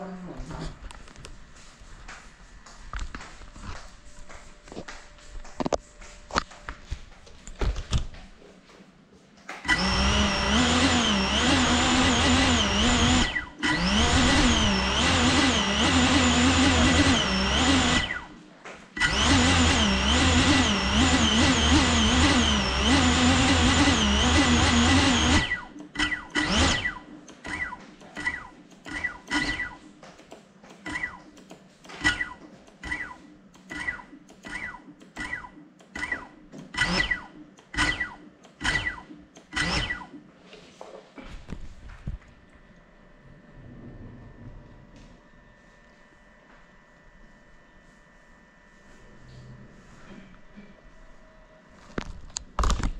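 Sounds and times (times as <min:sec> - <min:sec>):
drone motor blips: 0:09.7 - 0:18.3, 0:19.0 - 0:29.8, 0:30.9 - 0:40.3
drone motors whining: 0:09.7 - 0:18.4, 0:19.0 - 0:29.8, 0:30.8 - 0:40.2.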